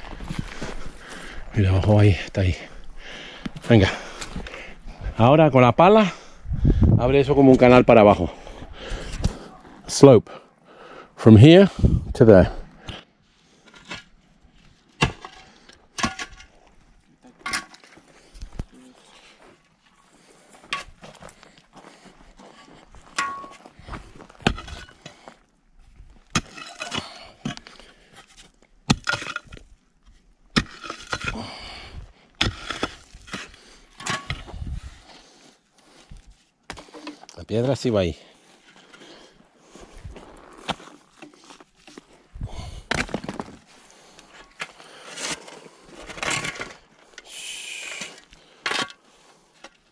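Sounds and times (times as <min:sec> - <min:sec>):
spade chopping stony soil: 0:15.0 - 0:16.5, 0:24.4 - 0:25.0, 0:26.3 - 0:27.7, 0:28.9 - 0:29.6, 0:30.5 - 0:31.7, 0:32.4 - 0:34.7, 0:42.8 - 0:43.6.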